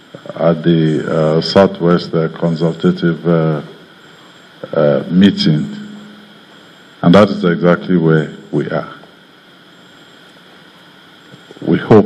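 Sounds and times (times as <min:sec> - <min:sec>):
low background hiss: 0:00.0 - 0:12.0.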